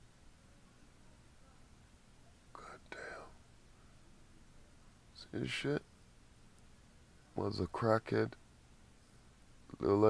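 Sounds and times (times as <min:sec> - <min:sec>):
faint steady hiss: 0:00.0 - 0:10.0
person whispering: 0:02.5 - 0:03.4.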